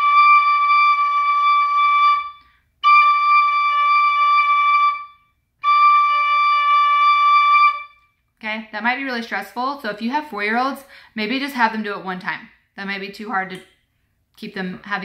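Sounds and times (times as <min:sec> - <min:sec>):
tin whistle held notes: 0:00.0 - 0:08.2.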